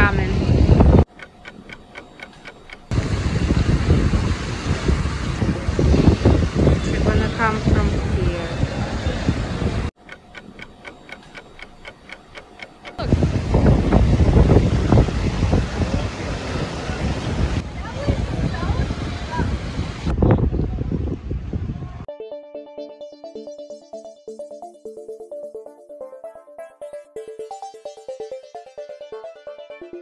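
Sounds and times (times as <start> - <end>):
wind buffeting microphone: 0.0 - 1.1, 2.9 - 9.9, 13.0 - 22.1
fast even ticking: 1.1 - 3.0, 10.0 - 13.0.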